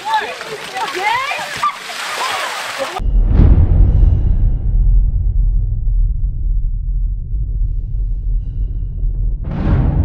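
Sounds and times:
people calling out: 0:00.0 - 0:03.0
water splashing on pavement: 0:00.0 - 0:03.0.

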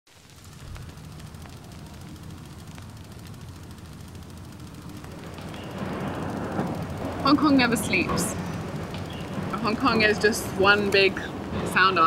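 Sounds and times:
low steady rumble: 0:00.1 - 0:12.0
faint clicks: 0:00.2 - 0:11.8.

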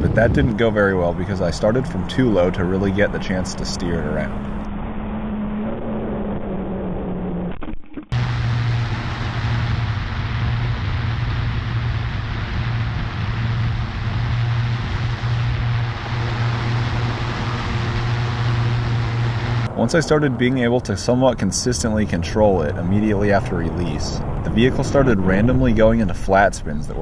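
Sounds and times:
low hum: 0:00.0 - 0:27.0.

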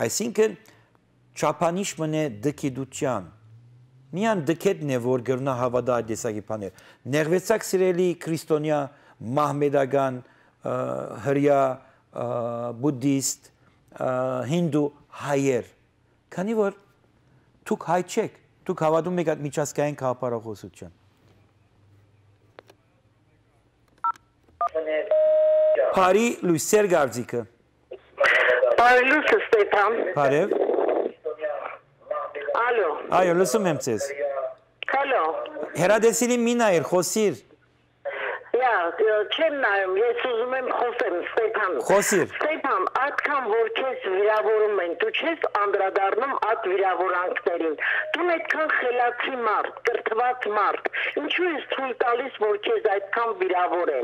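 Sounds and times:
person talking over phone line: 0:27.9 - 0:36.0, 0:38.1 - 0:54.0.

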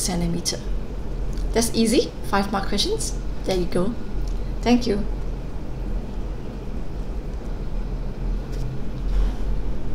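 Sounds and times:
faint hum: 0:00.0 - 0:09.9
low background rumble: 0:00.0 - 0:09.9.

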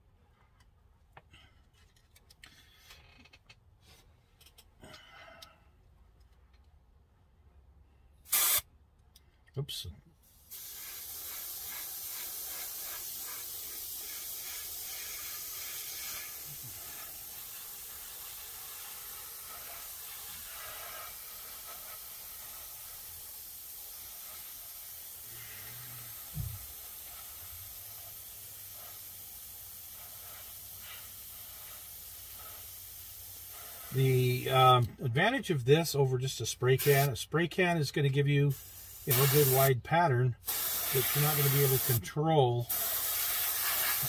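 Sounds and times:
airbrush hissing: 0:08.3 - 0:08.6, 0:10.3 - 0:34.8, 0:36.7 - 0:37.2, 0:38.5 - 0:39.7, 0:40.4 - 0:44.0.

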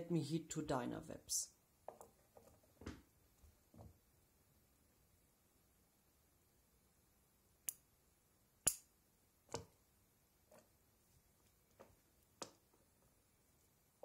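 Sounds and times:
sharp clicks and small knocks: 0:09.5 - 0:09.8, 0:11.7 - 0:12.9.

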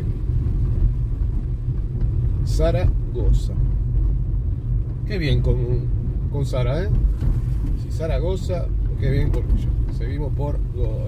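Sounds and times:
car driving low rumble: 0:00.0 - 0:11.0.

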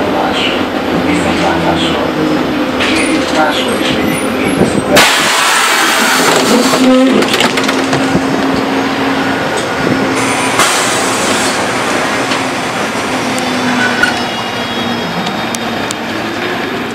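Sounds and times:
street noise: 0:00.0 - 0:16.9
trolleybus electrical hum: 0:00.0 - 0:16.9.

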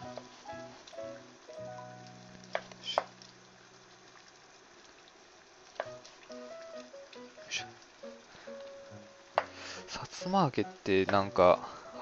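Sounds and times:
background music: 0:00.0 - 0:03.0, 0:05.9 - 0:12.0
water boiling in pot: 0:00.0 - 0:12.0.

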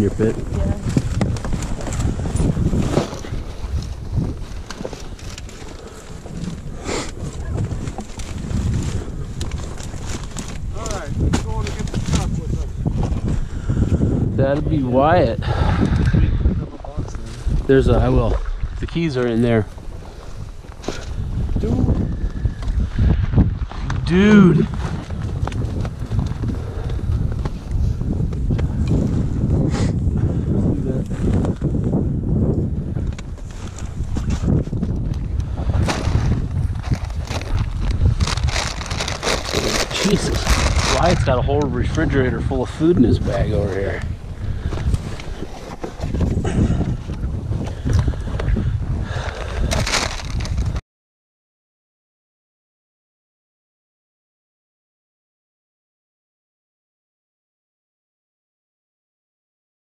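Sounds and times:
wind buffeting microphone: 0:00.0 - 0:50.8
gear rustling and knocking in grass: 0:34.0 - 0:41.9.

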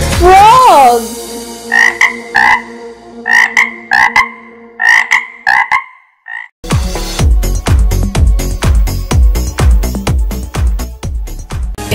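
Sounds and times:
frog croaking: 0:01.7 - 0:06.6.

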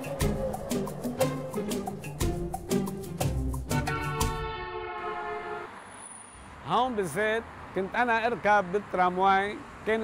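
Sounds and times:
rhythmic background music: 0:00.0 - 0:04.7.

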